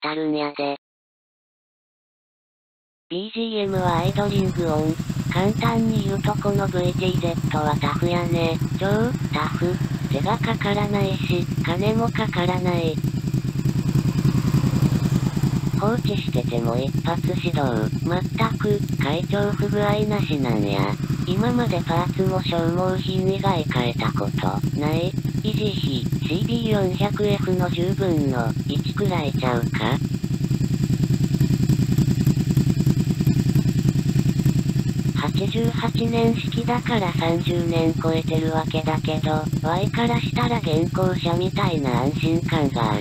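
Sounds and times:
motorcycle engine idling: 0:03.6 - 0:43.0.

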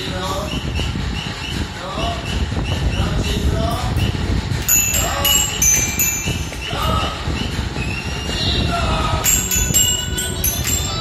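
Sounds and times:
steady low rumble: 0:00.0 - 0:11.0
toy xylophone notes: 0:04.6 - 0:07.0, 0:09.2 - 0:11.0.

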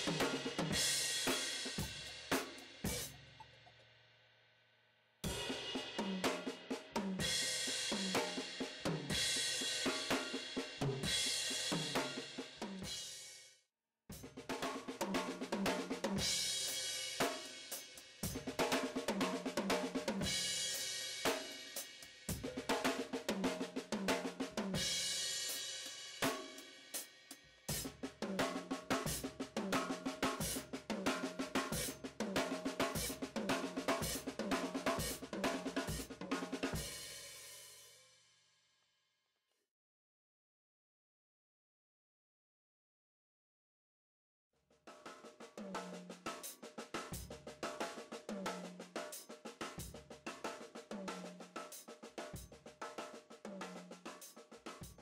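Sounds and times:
drum kit played fast: 0:00.0 - 0:03.6, 0:05.2 - 0:13.4, 0:14.1 - 0:37.9, 0:44.9 - 0:55.0.

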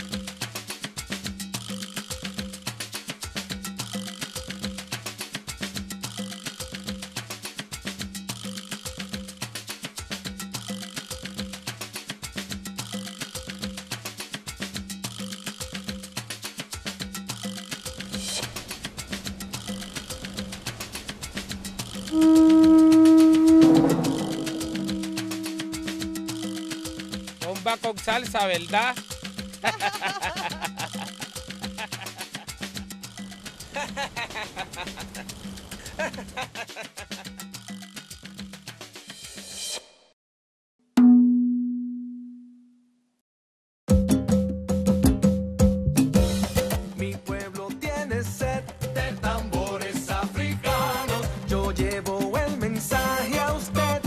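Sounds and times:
latin music percussion beat: 0:00.0 - 0:40.2, 0:43.9 - 0:54.0
cymbal-like wash: 0:18.4 - 0:27.3
loud held note: 0:22.1 - 0:27.4
loud deep drum hit: 0:23.4 - 0:25.4.

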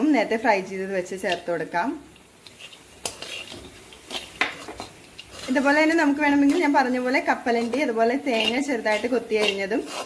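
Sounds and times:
spatula stirring in metal pan: 0:01.0 - 0:10.0.

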